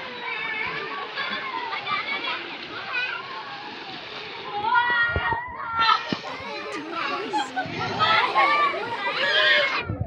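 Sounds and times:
water splashing: 0.0 - 9.9
children's voices calling out: 0.0 - 10.0.

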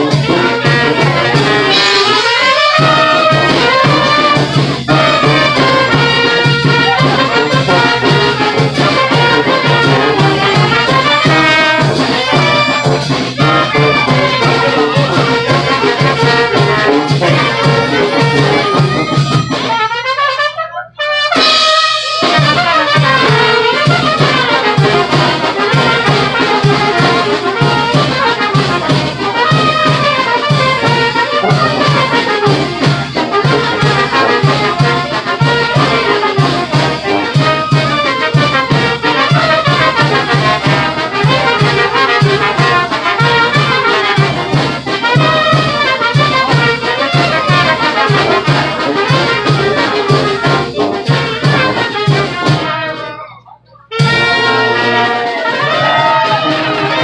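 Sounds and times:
brass band playing: 0.0 - 57.0
trumpets and trombones: 0.0 - 57.0.

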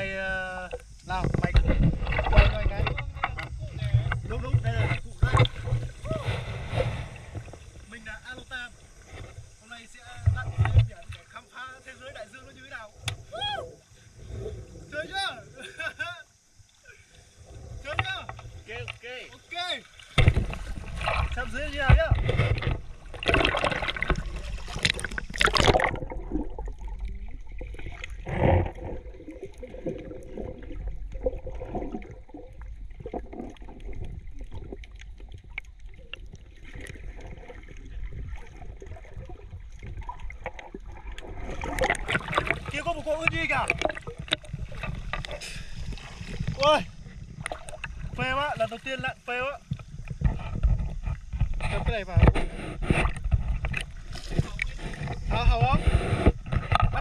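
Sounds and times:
water churning and splashing: 0.0 - 15.5, 16.8 - 57.0
muffled underwater gurgling: 0.0 - 15.8, 20.2 - 57.0.

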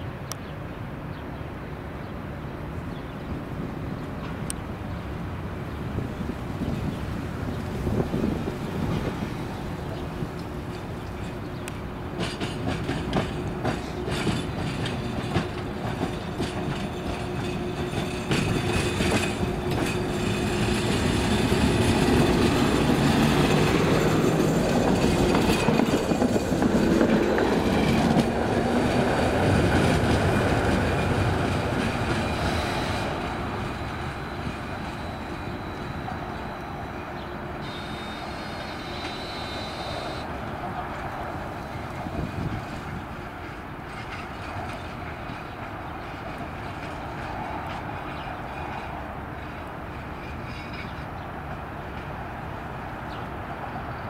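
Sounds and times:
tram passing: 0.0 - 54.0
wheels clicking over rail joints: 7.9 - 54.0
thin high squeal: 32.2 - 40.2.

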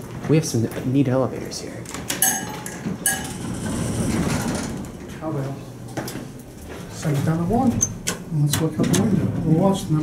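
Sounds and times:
elevator doors sliding open: 3.3 - 5.0.

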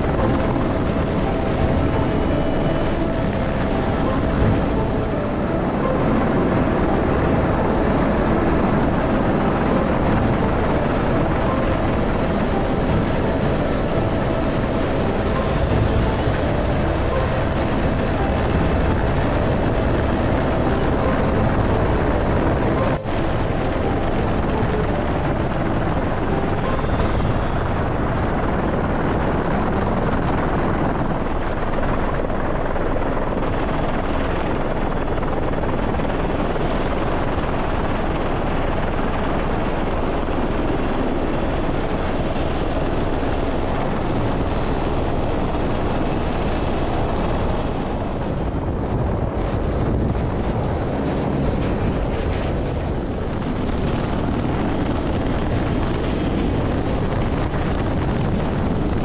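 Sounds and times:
helicopter rotor and engine: 0.0 - 59.0.

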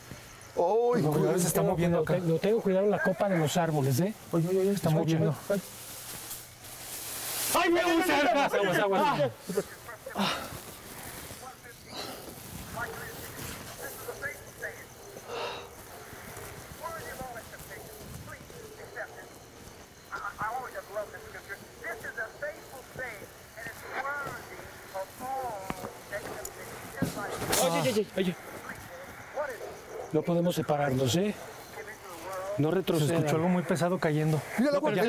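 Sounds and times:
steady faint hiss: 0.0 - 34.9
indistinct low voices: 8.7 - 35.0.

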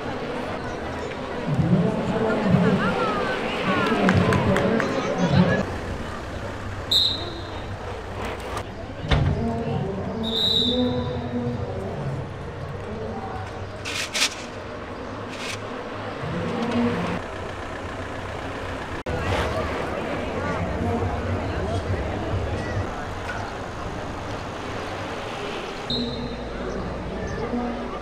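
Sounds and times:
distant murmur of voices: 0.0 - 17.8, 18.4 - 28.0.

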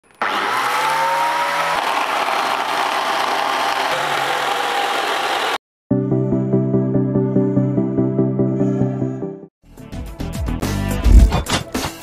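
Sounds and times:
angle grinder running: 0.1 - 5.6.

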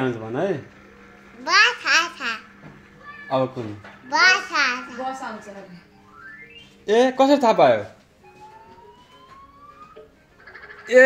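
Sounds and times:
cartoon siren wail: 8.4 - 10.1.

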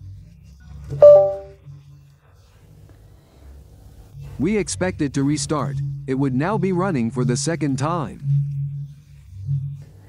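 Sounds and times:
low steady hum: 1.0 - 1.6
phone startup chime: 1.0 - 1.6.

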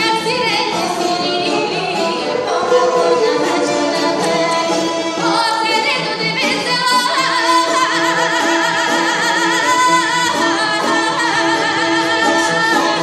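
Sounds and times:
folk instrumental ensemble: 0.0 - 13.0
woman singing in folk voice: 0.0 - 13.0.

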